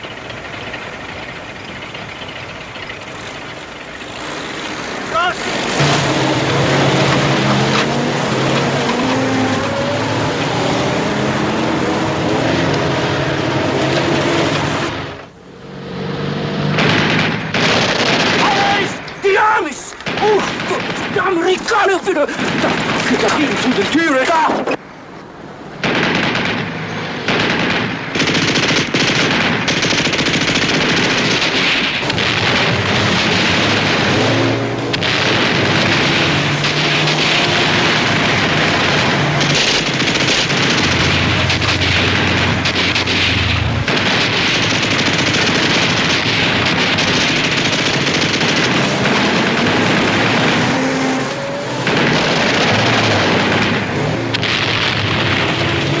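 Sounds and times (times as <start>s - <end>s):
vehicle engines: 0.0s - 56.0s
machine-gun fire and gunshots: 16.7s - 19.0s, 20.0s - 24.3s, 25.8s - 51.1s, 51.7s - 56.0s.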